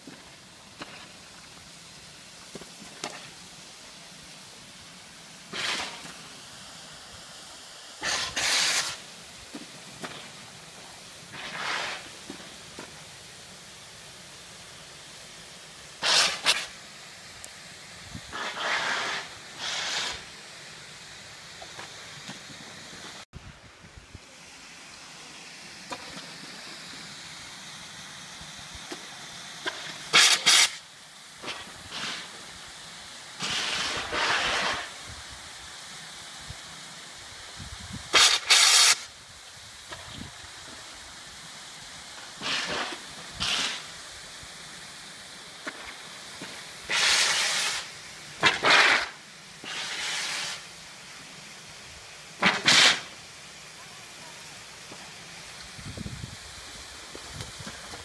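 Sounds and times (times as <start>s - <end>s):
water jets hissing bursts: 0.0s - 58.0s.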